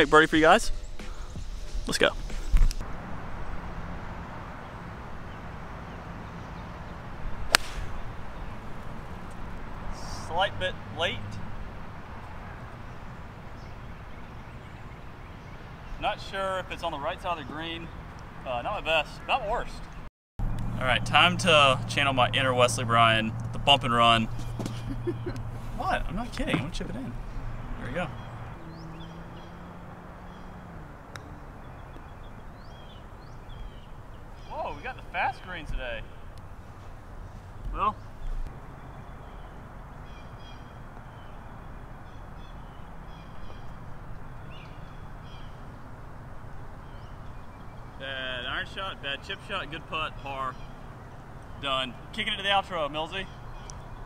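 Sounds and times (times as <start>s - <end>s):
golf club striking ball: 7.4s - 9.4s.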